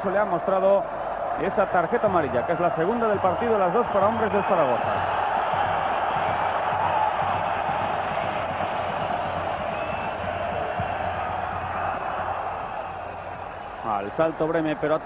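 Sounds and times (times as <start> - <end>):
stadium crowd din: 0.0 - 15.0.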